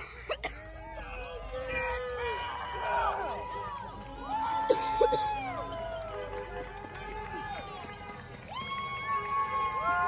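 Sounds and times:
people cheering and whooping: 0:00.6 - 0:10.0.

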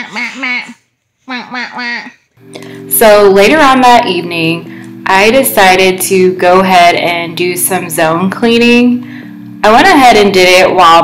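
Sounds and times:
person making playful voice sounds: 0:00.0 - 0:02.2.

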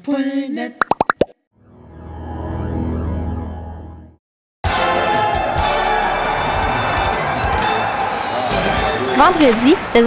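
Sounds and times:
cartoon plops: 0:00.8 - 0:01.4.

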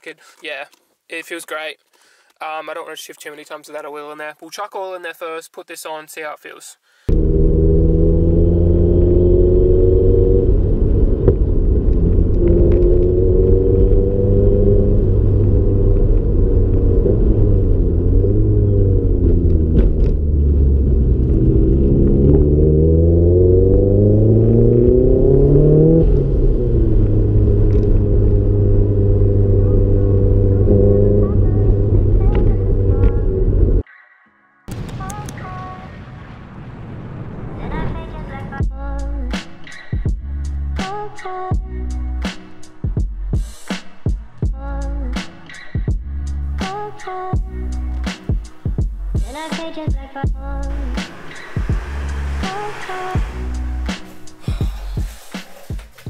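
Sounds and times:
turbocharged car engine revving: 0:07.1 - 0:33.8, 0:50.6 - 0:54.9.

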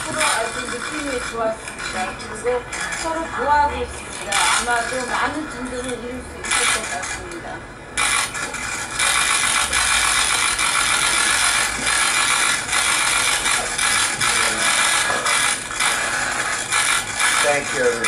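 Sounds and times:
camera shutters clicking rapidly: 0:06.4 - 0:07.2, 0:08.0 - 0:17.5.

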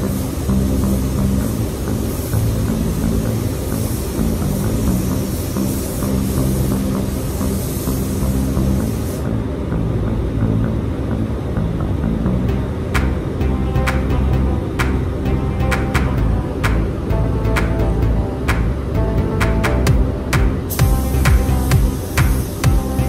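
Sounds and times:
spray gun hissing: 0:00.0 - 0:09.4, 0:20.5 - 0:23.0
background music: 0:00.0 - 0:23.0.

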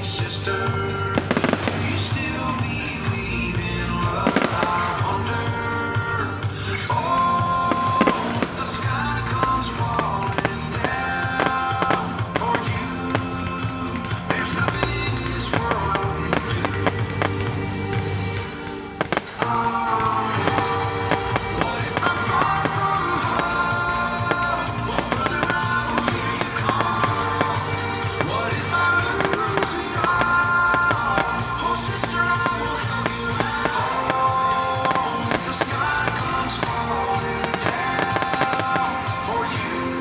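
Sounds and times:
firework bangs and crackling: 0:00.0 - 0:40.0
music playing: 0:00.0 - 0:40.0.

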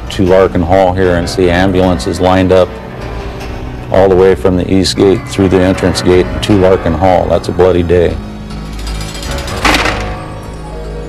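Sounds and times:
low musical drone: 0:00.0 - 0:11.0.

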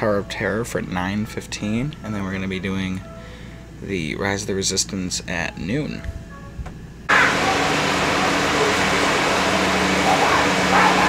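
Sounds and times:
bus engine humming: 0:07.1 - 0:11.0
rush of noise: 0:07.1 - 0:11.0.

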